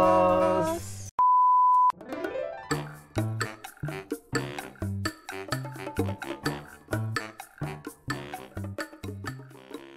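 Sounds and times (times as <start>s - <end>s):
upbeat rhythmic music: 1.9s - 9.9s.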